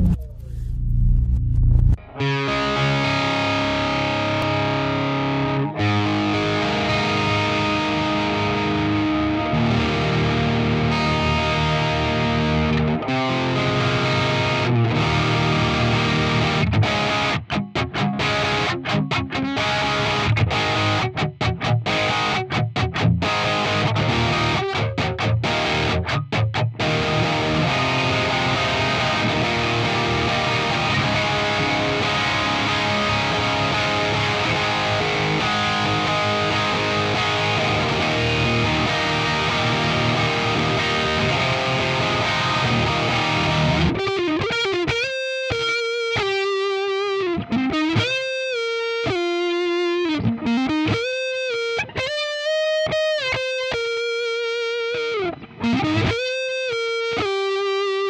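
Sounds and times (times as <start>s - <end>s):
distorted electric guitar: 0.0s - 58.0s.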